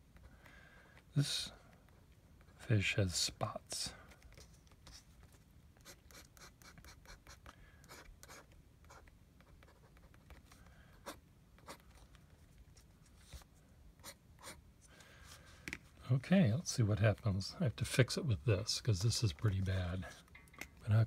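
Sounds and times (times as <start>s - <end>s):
pen nib scratching on paper: 5.8s - 11.8s, 14.0s - 14.6s.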